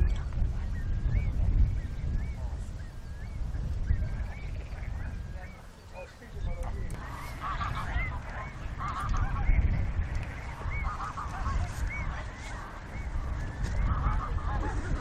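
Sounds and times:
short bird calls: 0.7s - 14.5s
low steady rumble: 6.9s - 15.0s
geese honking: 7.0s - 15.0s.

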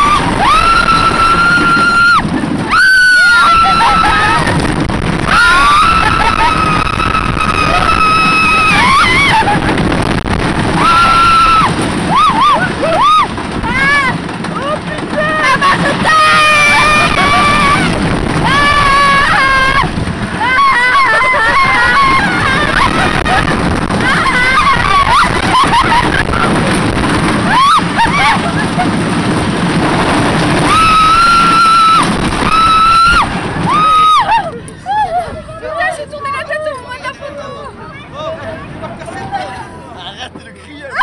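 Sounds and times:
riders screaming and whooping: 0.0s - 36.8s
loud wind: 0.0s - 41.0s
roller coaster train rumble: 0.0s - 41.0s.

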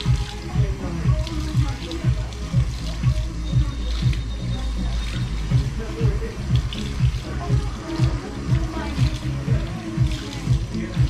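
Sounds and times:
background music with steady beat: 0.0s - 11.0s
shower water spraying on hair: 0.0s - 11.0s.

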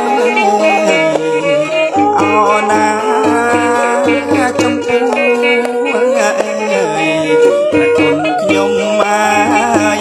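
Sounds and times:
person singing ornamented melody: 0.0s - 10.0s
traditional instruments: 0.0s - 10.0s.

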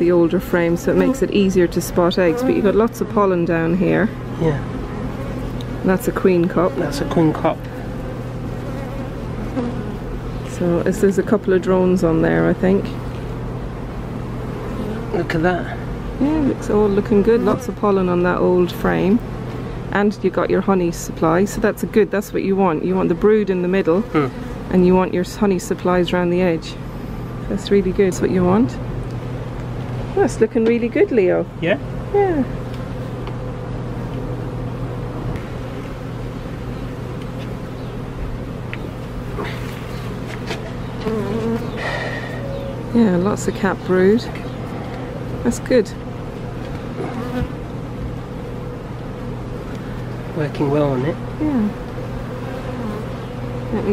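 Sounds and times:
close bee buzz: 0.0s - 27.8s, 32.0s - 53.9s
honeybees buzzing: 0.0s - 53.9s.

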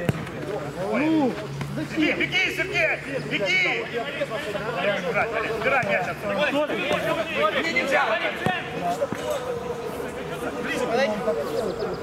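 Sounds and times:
men talking and calling out: 0.0s - 12.0s.

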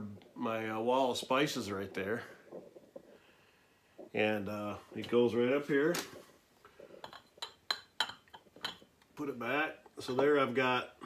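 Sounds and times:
glass jars clinking: 7.0s - 9.0s.

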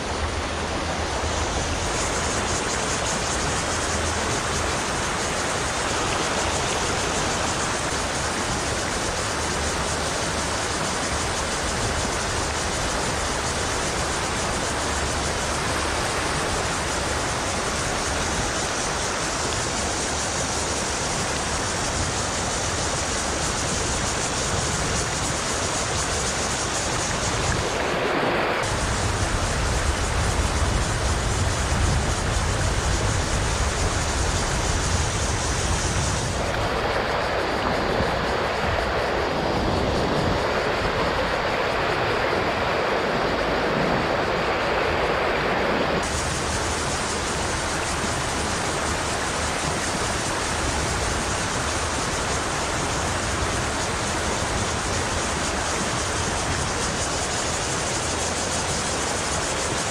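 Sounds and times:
river water rushing over rocks: 0.0s - 59.9s.

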